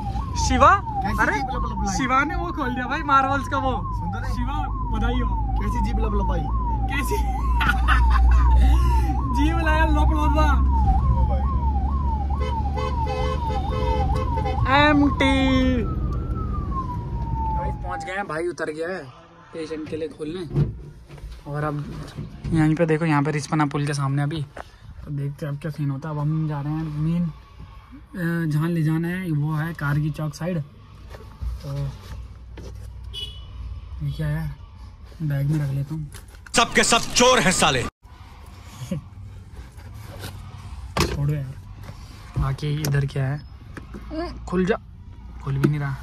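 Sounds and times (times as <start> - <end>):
ambulance siren sweeping: 0.0 - 19.7, 25.4 - 32.6, 40.2 - 46.0
engine and road rumble: 0.0 - 46.0.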